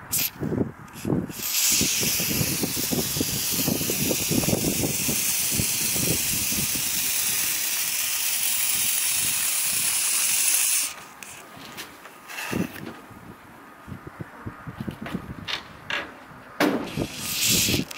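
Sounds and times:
aerosol spray hissing: 0.1s - 0.3s, 1.0s - 11.4s, 16.9s - 17.9s.

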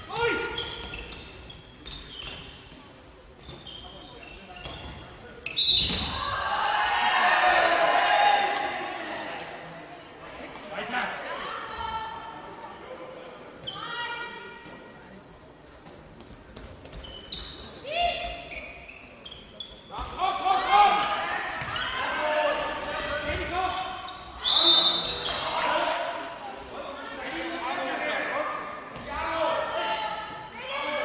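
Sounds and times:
players calling and shouting: 0.0s - 15.5s, 17.0s - 31.0s
ball bouncing on hall floor: 15.8s - 17.2s.

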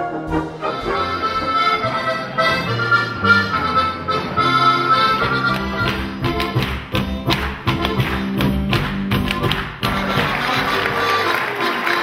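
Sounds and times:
accordion folk dance music: 0.0s - 12.0s
shoes tapping wooden stage: 4.4s - 12.0s
applause: 5.8s - 12.0s.

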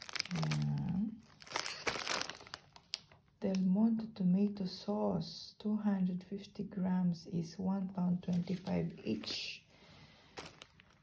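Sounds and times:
person speaking: 0.0s - 2.5s, 6.0s - 9.7s
plastic packaging crinkling: 0.0s - 3.6s, 10.2s - 11.0s.

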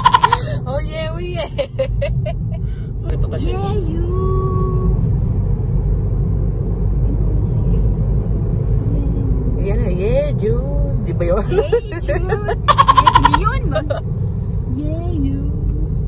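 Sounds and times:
car cabin road and engine rumble: 0.0s - 16.0s.

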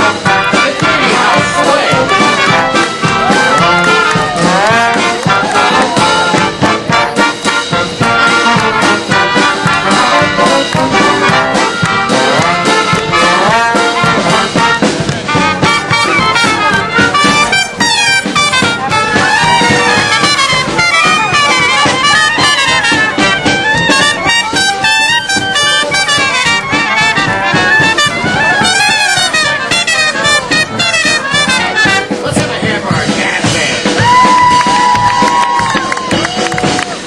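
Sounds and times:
marching brass band playing: 0.0s - 37.0s.

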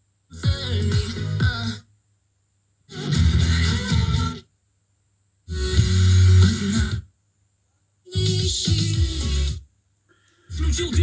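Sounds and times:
radio music snippets: 0.3s - 1.9s, 2.9s - 4.4s, 5.5s - 7.1s, 8.1s - 9.6s, 10.4s - 11.0s.

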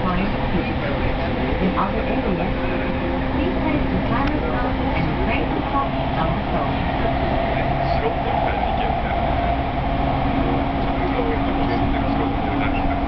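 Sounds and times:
train running noise with hum: 0.0s - 13.0s.

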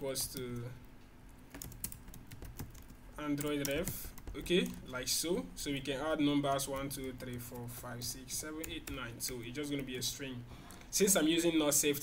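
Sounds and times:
computer keyboard typing: 0.1s - 0.7s, 1.4s - 4.9s, 6.6s - 10.1s.

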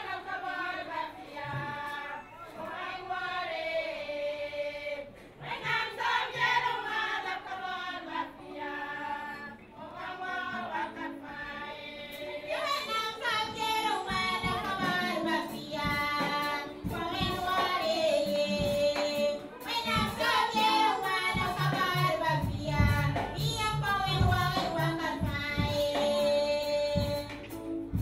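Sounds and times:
women's choir singing a hymn: 0.0s - 28.0s
low pulsing beat: 21.3s - 25.9s.

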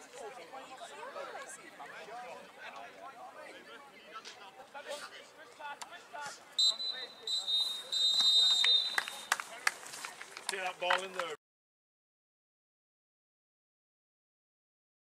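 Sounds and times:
spectators chatting: 0.0s - 11.4s
referee's whistle blasts: 6.6s - 9.4s.

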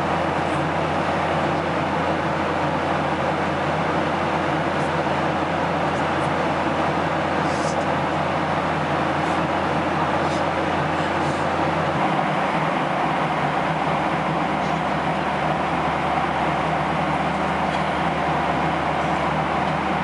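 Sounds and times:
airliner cabin engine roar: 0.0s - 20.0s.

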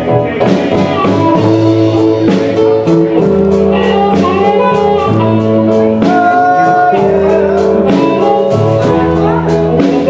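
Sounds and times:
bass and drums: 0.0s - 10.0s
electric guitar lead: 0.0s - 10.0s.

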